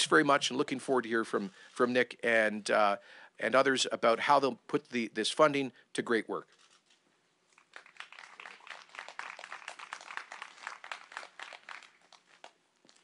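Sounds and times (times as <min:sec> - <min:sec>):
faint applause: 0:07.6 - 0:12.6.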